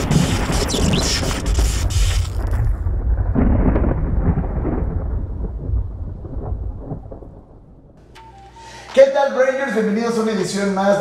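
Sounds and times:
rain-like hiss and crackle: 0.0s - 5.7s
thunder rumble: 0.0s - 8.0s.

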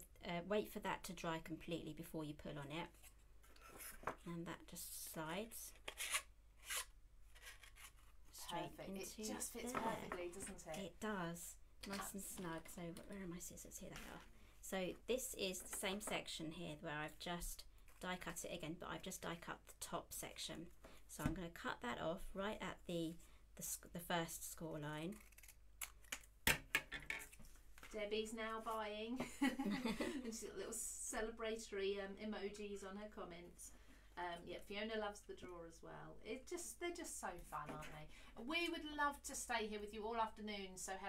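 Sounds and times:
scissors snipping cardstock: 25.0s - 26.3s.

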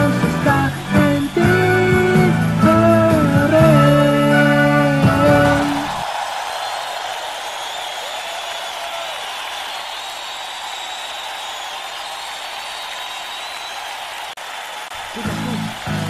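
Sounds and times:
audience applauding: 0.0s - 16.0s.

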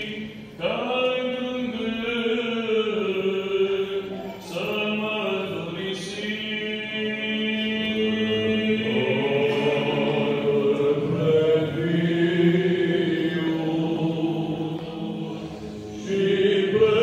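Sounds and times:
voices chanting a cappella: 0.0s - 17.0s.

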